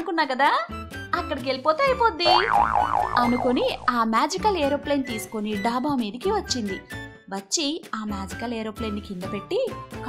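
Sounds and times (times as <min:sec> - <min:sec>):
light background music: 0:00.0 - 0:10.0
woman speaking: 0:01.2 - 0:02.5, 0:03.1 - 0:06.8
cartoon boing sound effect: 0:02.2 - 0:04.0.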